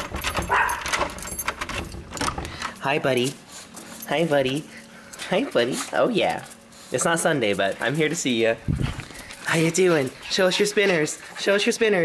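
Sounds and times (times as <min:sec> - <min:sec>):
keys jangling in door lock: 0:00.0 - 0:05.2
small dog barking: 0:00.5 - 0:00.8.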